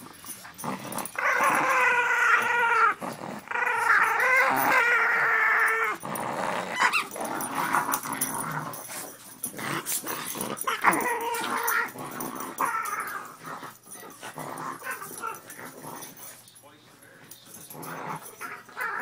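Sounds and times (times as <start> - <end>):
dogs growling in play: 0.0 - 19.0.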